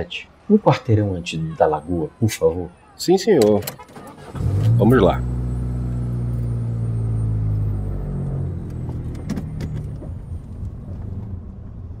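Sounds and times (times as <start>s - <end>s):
car engine running: 4.2s - 12.0s.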